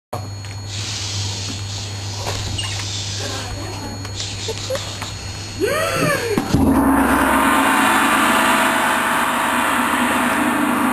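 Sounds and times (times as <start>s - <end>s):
gong ringing: 6.4s - 10.9s.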